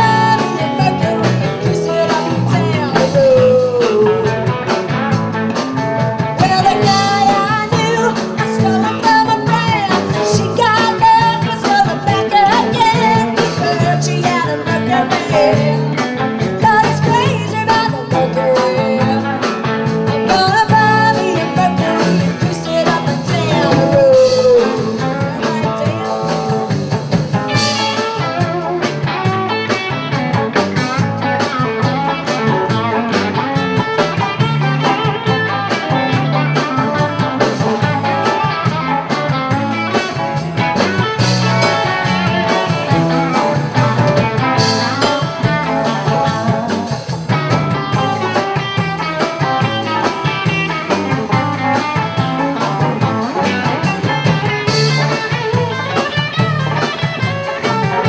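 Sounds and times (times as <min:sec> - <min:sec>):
drum kit: 0:00.0 - 0:58.0
electric bass: 0:00.0 - 0:58.0
electric guitars: 0:00.0 - 0:58.0.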